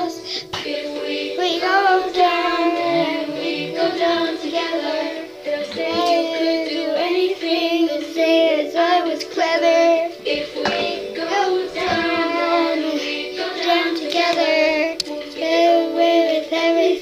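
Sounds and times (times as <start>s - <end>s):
backing music: 0.0s - 17.0s
girl singing: 0.0s - 17.0s.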